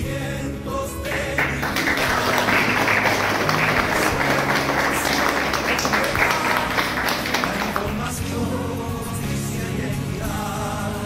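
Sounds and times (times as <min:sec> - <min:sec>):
background music: 0:00.0 - 0:11.0
audience applauding: 0:01.1 - 0:08.2.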